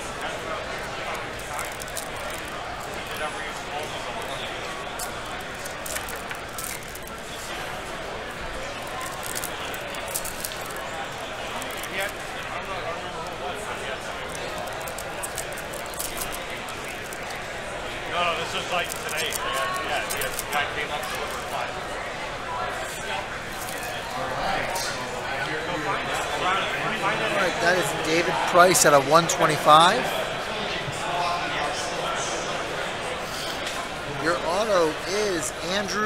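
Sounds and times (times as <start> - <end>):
card packs crinkling: 0.0 - 21.7, 22.8 - 24.1
murmur of many voices: 0.0 - 36.0.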